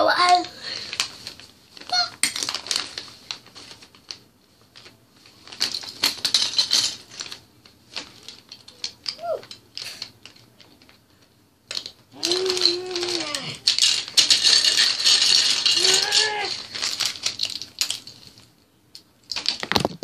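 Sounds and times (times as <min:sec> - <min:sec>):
plastic toy bricks clattering: 0:00.0 - 0:20.0
child's wordless vocal sounds: 0:12.2 - 0:13.6, 0:15.8 - 0:16.6.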